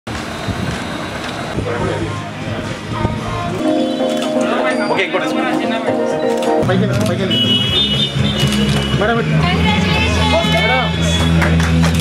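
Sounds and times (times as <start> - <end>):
outdoor background din: 0.1 - 12.0
indistinct voices: 1.6 - 11.4.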